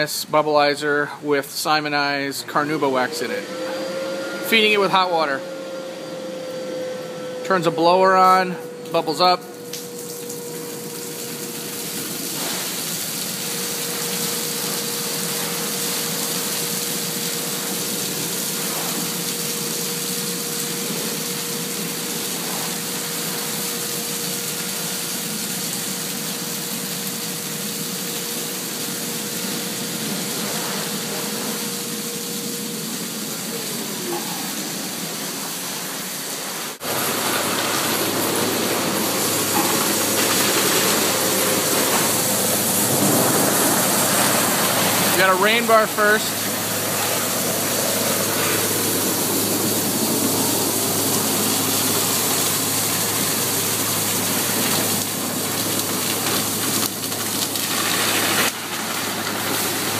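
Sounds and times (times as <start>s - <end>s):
steady hum: 0.0s - 55.6s
rush of spraying water: 7.5s - 59.9s
wax solution splashing down: 9.5s - 59.9s.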